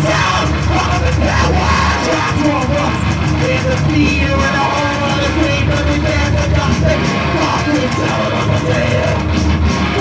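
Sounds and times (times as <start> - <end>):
person yelling vocals: 0.0 - 3.0
live rock band playing: 0.0 - 10.0.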